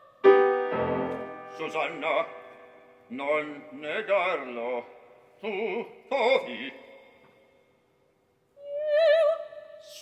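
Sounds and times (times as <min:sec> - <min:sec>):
operatic voice singing with vibrato: 0:03.1 - 0:06.9.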